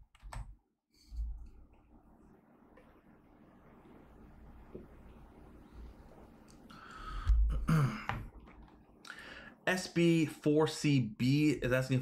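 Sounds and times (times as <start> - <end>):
man clearing his throat: 7.5 - 8.3.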